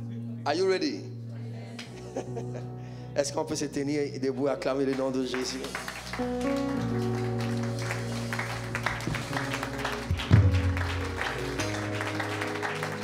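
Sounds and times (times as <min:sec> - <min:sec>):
instrumental worship music: 0:00.0 - 0:13.0
congregation applauding: 0:04.7 - 0:13.0.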